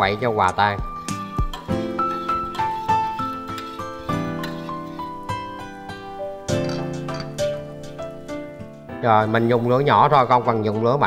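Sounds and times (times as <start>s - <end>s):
instrumental music single notes: 0.0s - 11.0s.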